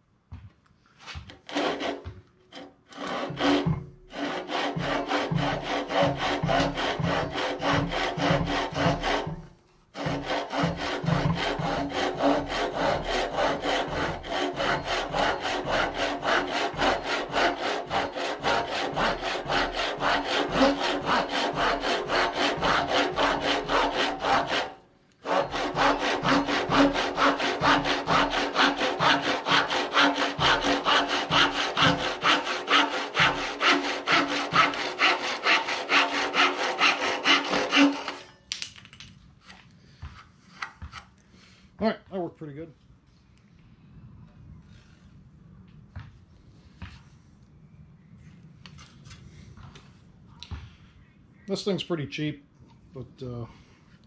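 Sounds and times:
pull saw cutting wood: 0:01.3 - 0:38.3.

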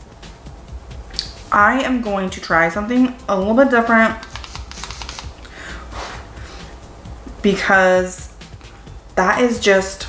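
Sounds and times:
steady low hum: 0:00.0 - 0:10.0
person breathing softly: 0:05.5 - 0:06.8.

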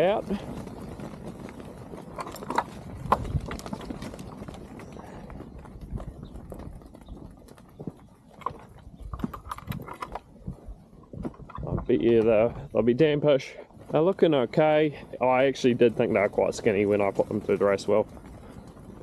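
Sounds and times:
sheep hooves clattering on dirt: 0:00.0 - 0:19.0.

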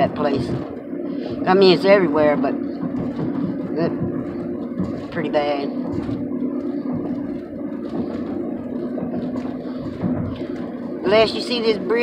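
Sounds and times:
car engine and tyre hum: 0:00.0 - 0:12.0.

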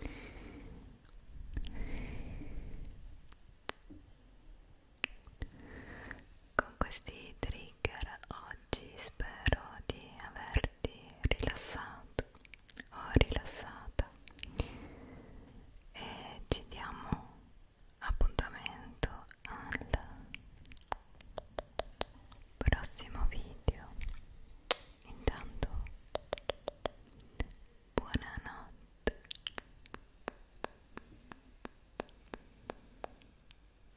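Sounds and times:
wet mouth clicks: 0:01.0 - 0:02.0, 0:03.2 - 0:03.9, 0:05.0 - 0:05.5, 0:12.2 - 0:12.9, 0:19.1 - 0:22.8, 0:23.7 - 0:33.7
person whispering: 0:06.6 - 0:14.6, 0:15.9 - 0:17.4, 0:18.0 - 0:20.4, 0:21.3 - 0:24.2, 0:25.0 - 0:29.3.

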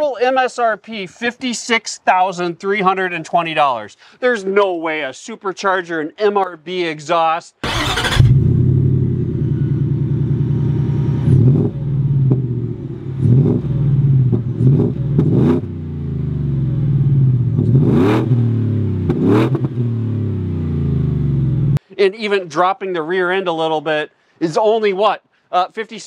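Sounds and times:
engine throttle blips: 0:07.6 - 0:21.8.

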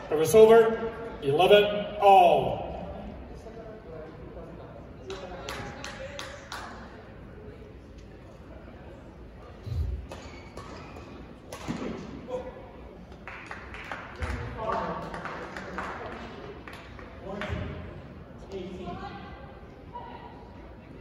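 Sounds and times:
court shoes squeaking: 0:09.7 - 0:11.9.

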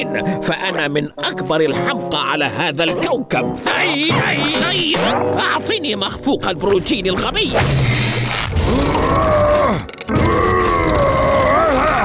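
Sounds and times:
cartoon character groaning: 0:08.7 - 0:12.0.

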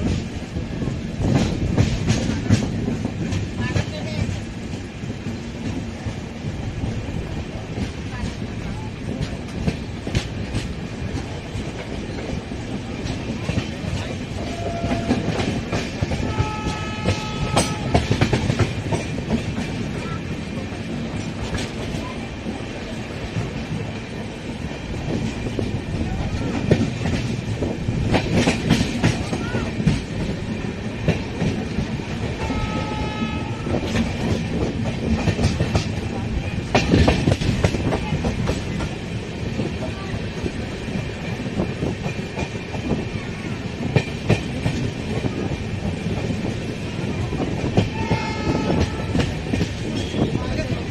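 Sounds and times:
train rumbling: 0:00.0 - 0:50.9
wheels clacking over rail joints: 0:00.0 - 0:50.9
train horn blasts: 0:14.4 - 0:15.6, 0:16.2 - 0:18.4, 0:32.4 - 0:34.0, 0:47.9 - 0:49.4.

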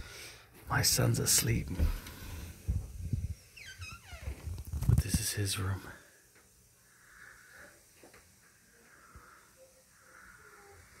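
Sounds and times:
door high squeal: 0:03.6 - 0:04.4.

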